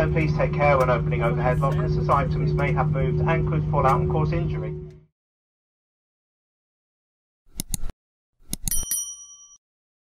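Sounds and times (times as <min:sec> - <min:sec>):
mouse clicks: 0:07.5 - 0:07.9
bell ding: 0:08.6 - 0:09.6.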